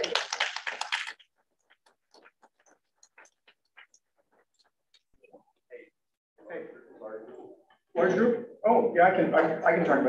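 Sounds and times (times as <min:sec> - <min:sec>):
small group applauding: 0:00.0 - 0:03.6.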